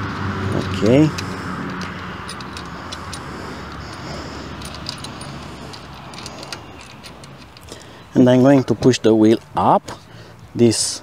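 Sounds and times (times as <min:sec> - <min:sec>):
metallic clicks and jingling: 0:00.0 - 0:08.8.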